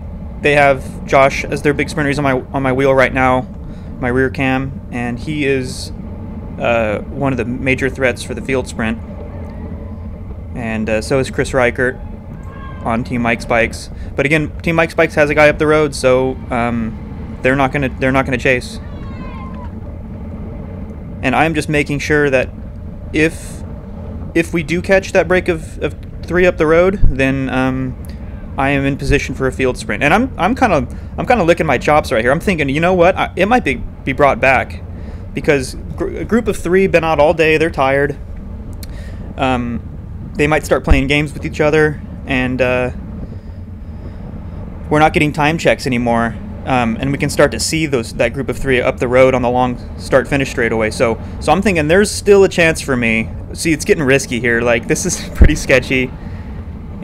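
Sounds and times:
faint falling tones: 0:00.0 - 0:57.0
wind and road rumble: 0:00.0 - 0:57.0.

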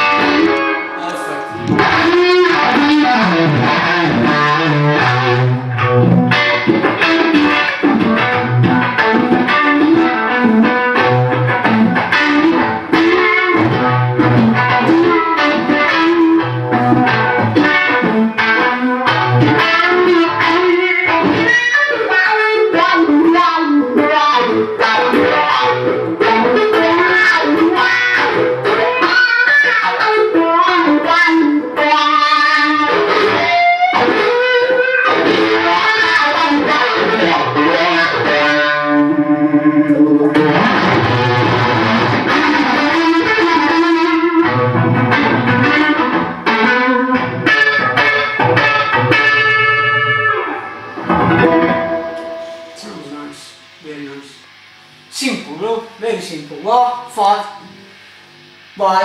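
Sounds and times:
fuzz electric guitar lead: 0:00.0 - 0:59.0.

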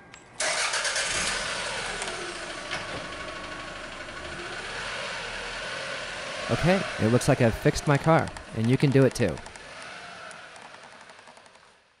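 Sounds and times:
car engine running: 0:01.0 - 0:11.9
faint rapid engine ticks: 0:07.0 - 0:11.8.

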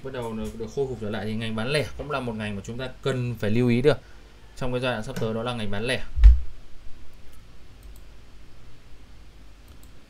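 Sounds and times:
room hum: 0:00.0 - 0:10.0
computer mouse clicks: 0:07.1 - 0:08.1, 0:09.6 - 0:10.0.

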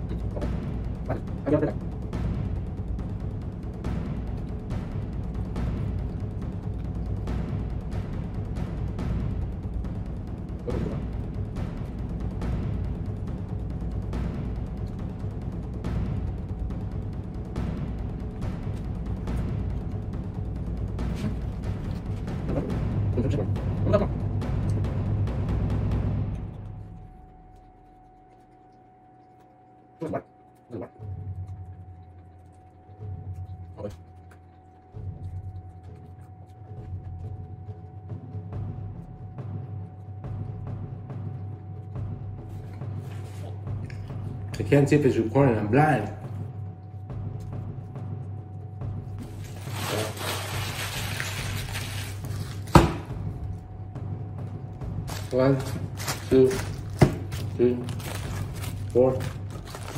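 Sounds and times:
man chewing food: 0:00.0 - 0:22.5, 0:24.4 - 0:44.5, 0:46.3 - 0:59.9
background music: 0:00.0 - 0:59.9
faint steady hum: 0:24.4 - 0:44.6
paper wrappers crinkling: 0:49.2 - 0:52.8, 0:55.1 - 0:59.9.

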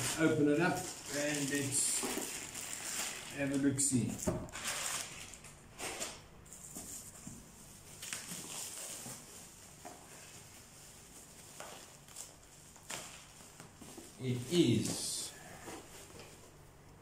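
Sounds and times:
bubble wrap rustling and crinkling: 0:00.0 - 0:15.2.

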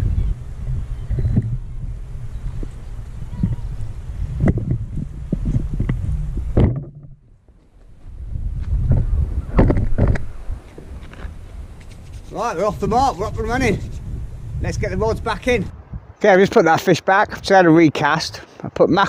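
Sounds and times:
wind buffeting microphone: 0:00.0 - 0:17.7.

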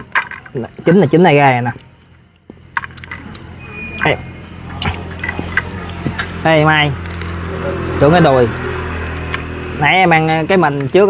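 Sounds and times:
frogs sizzling on a grill: 0:00.0 - 0:11.0
steady low hum: 0:00.0 - 0:11.0.

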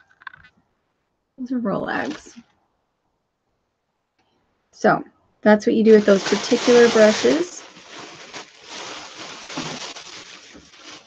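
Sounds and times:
plastic bag and cloth rustling: 0:01.9 - 0:02.4, 0:05.8 - 0:11.0.

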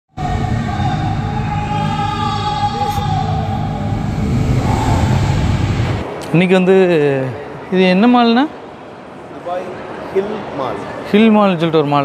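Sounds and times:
roller coaster whining tone: 0:00.3 - 0:06.0.

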